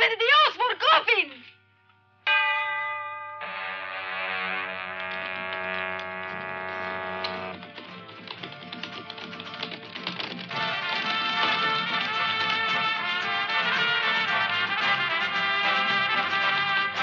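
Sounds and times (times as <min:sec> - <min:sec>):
western film score: 0:03.4 - 0:17.0
fast ticking: 0:04.9 - 0:17.0.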